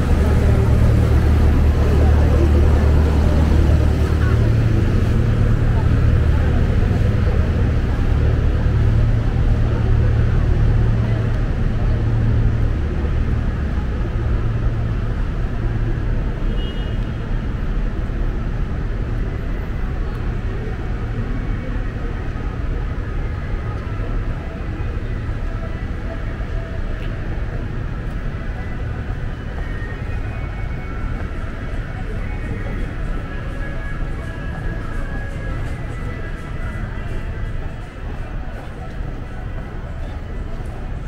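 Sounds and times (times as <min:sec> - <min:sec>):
faint distant voices: 0:00.0 - 0:41.0
low engine rumble: 0:00.0 - 0:41.0
traffic hum: 0:00.0 - 0:41.0.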